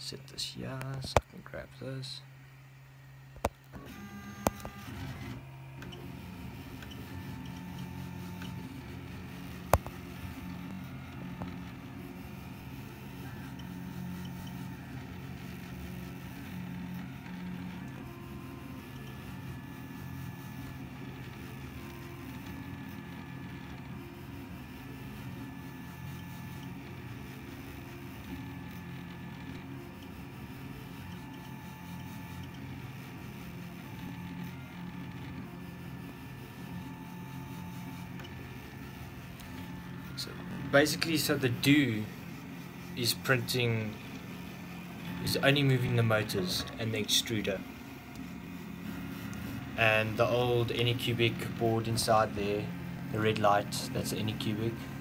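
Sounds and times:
stepper motors whining: 0:03.6 - 0:55.0
fan hum: 0:05.4 - 0:55.0.

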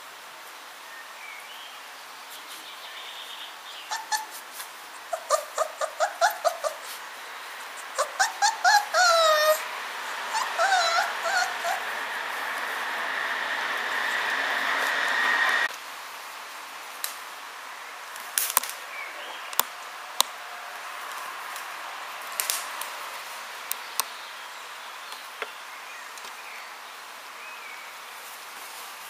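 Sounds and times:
puppies yipping and whimpering: 0:03.8 - 0:14.6
hiss: 0:09.5 - 0:17.4.

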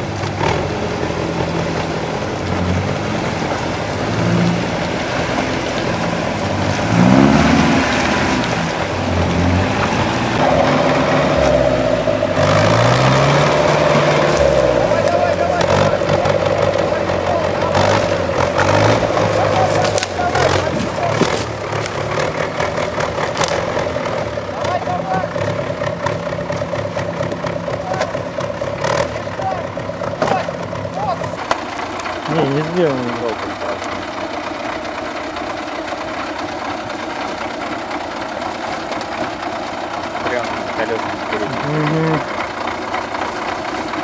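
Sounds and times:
truck engine running: 0:00.0 - 0:44.0
person calling out: 0:41.5 - 0:42.3.

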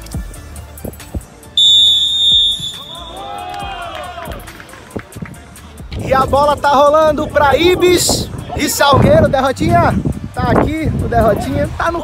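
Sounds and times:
background music: 0:00.0 - 0:12.0
referee's whistle blast: 0:01.6 - 0:03.4.

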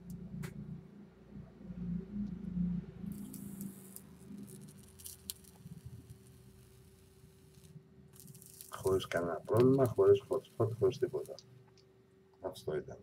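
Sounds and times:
faint steady hum: 0:00.0 - 0:13.0
vape coil hissing and crackling: 0:03.0 - 0:11.5.

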